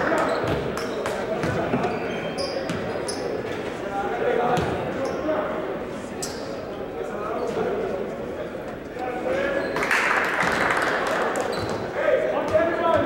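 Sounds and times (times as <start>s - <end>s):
crowd chatter: 0.0s - 13.0s
basketball bouncing on gym floor: 0.2s - 2.0s.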